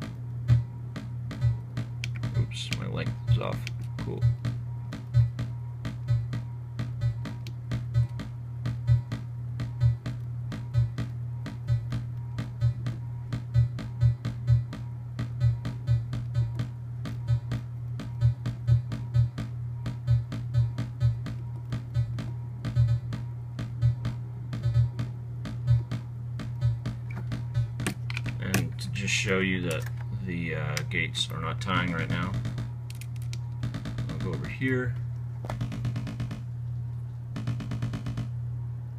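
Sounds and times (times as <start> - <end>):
synthesizer percussive clicks: 0.0 - 28.7, 31.7 - 36.4, 37.4 - 38.3
steady low synthesizer tone: 0.0 - 38.9.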